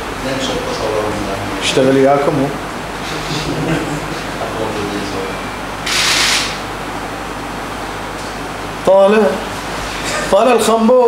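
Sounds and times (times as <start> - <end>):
sharp burst of hiss: 5.8 - 6.6.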